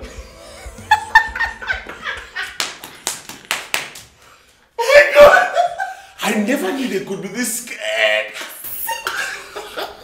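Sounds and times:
laughter: 0.3s - 2.7s, 5.3s - 6.0s, 8.8s - 10.0s
hands clapping: 1.7s - 4.3s.

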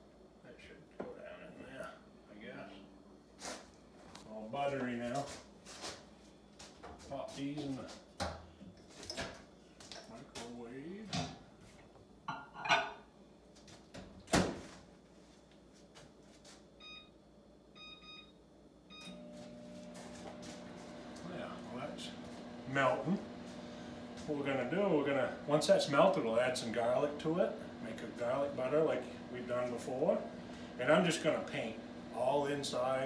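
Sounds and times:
microwave humming: 16.8s - 33.0s.

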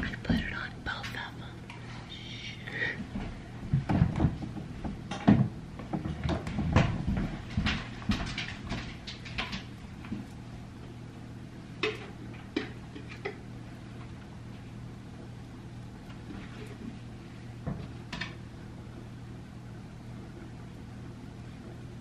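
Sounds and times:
woman whispering: 0.0s - 3.1s.

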